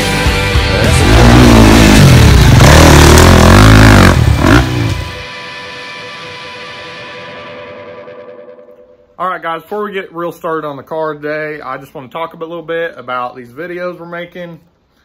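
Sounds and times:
rock music with distorted guitar: 0:00.0 - 0:09.2.

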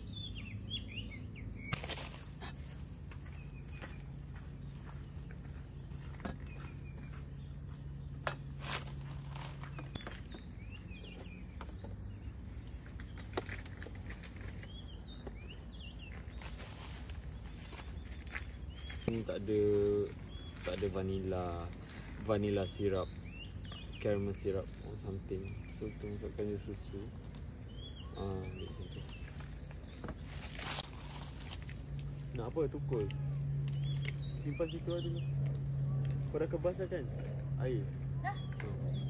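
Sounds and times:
bird chirps: 0:00.0 - 0:39.0
low steady hum: 0:00.0 - 0:39.0.

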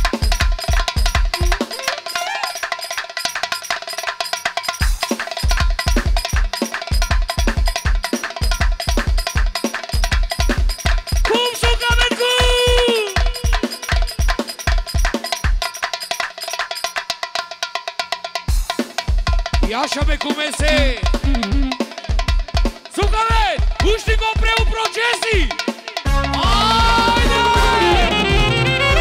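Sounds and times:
fast kick drum beat: 0:00.0 - 0:01.8, 0:04.8 - 0:16.9, 0:18.5 - 0:29.0
dance band music: 0:00.0 - 0:02.8, 0:04.8 - 0:15.8, 0:18.6 - 0:29.0
cowbell-like percussion: 0:00.0 - 0:29.0.

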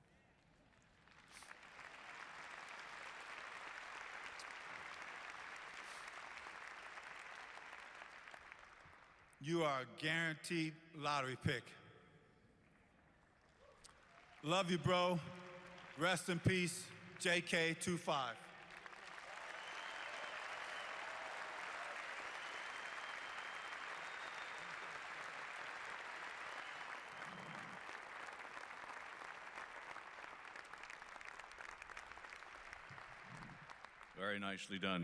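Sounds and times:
audience applauding: 0:00.8 - 0:09.4, 0:18.4 - 0:34.4.

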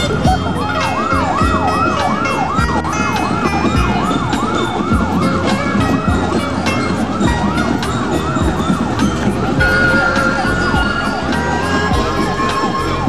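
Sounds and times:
drum beats: 0:00.0 - 0:13.0
held musical tones: 0:00.0 - 0:13.0
siren yelping: 0:00.0 - 0:13.0.

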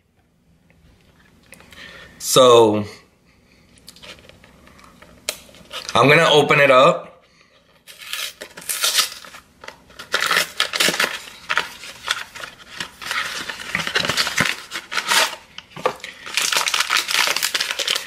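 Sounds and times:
paper packet crinkling: 0:07.8 - 0:18.0
cardboard box tearing: 0:07.9 - 0:09.4, 0:10.0 - 0:15.4.

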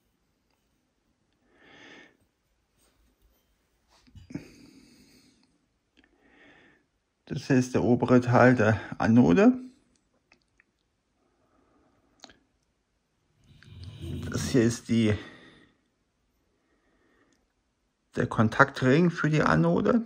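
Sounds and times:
breath out through nose: 0:13.5 - 0:14.6
person speaking: 0:13.5 - 0:15.5.

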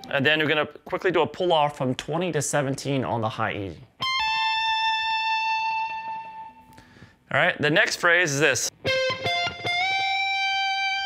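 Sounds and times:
electric guitar high note: 0:08.8 - 0:11.0.

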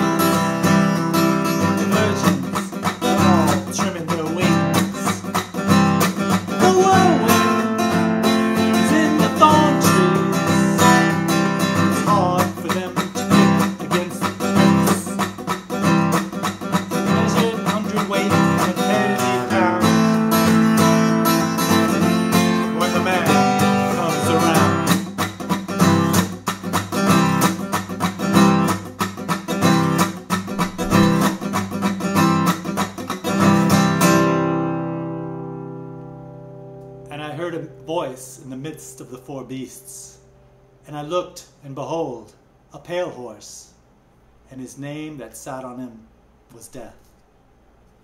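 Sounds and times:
acoustic guitar strumming: 0:00.0 - 0:42.0.

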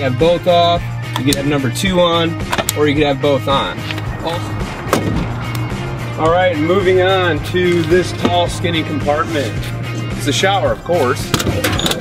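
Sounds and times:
background music: 0:00.0 - 0:12.0
car door slammed shut: 0:04.9 - 0:05.3.

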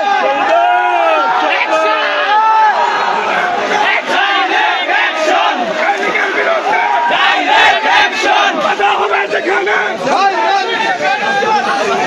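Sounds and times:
crowd of men shouting: 0:00.0 - 0:12.0.

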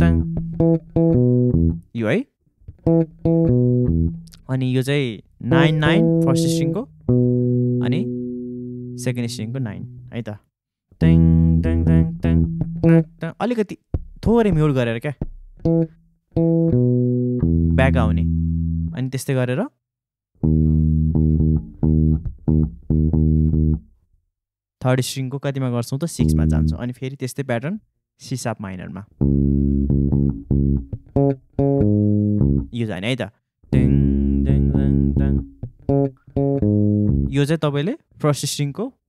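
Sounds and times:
electric bass notes plucked: 0:00.0 - 0:02.0, 0:02.6 - 0:04.8, 0:05.4 - 0:10.2, 0:11.0 - 0:13.2, 0:14.0 - 0:19.0, 0:20.4 - 0:23.9, 0:26.2 - 0:26.8, 0:29.2 - 0:32.8, 0:33.7 - 0:37.6.

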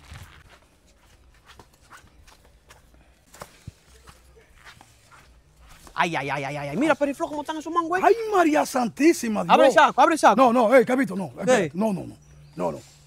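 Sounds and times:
footsteps on dirt: 0:00.0 - 0:07.5.

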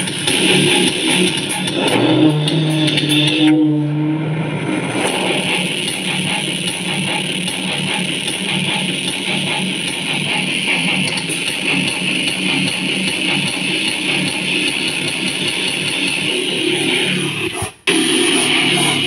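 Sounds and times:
rock music through speaker: 0:00.0 - 0:19.0.

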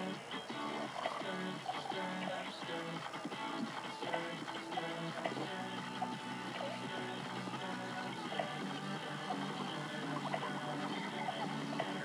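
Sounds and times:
television commercial music: 0:00.0 - 0:12.0.

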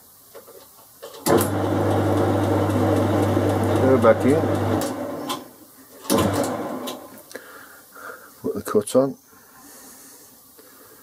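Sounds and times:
lathe running: 0:01.3 - 0:05.5, 0:06.1 - 0:07.1.

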